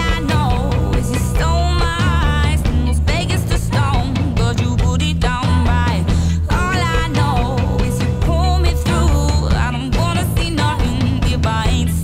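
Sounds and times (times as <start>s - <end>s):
live band bass and drums: 0.0s - 12.0s
woman singing: 0.0s - 12.0s.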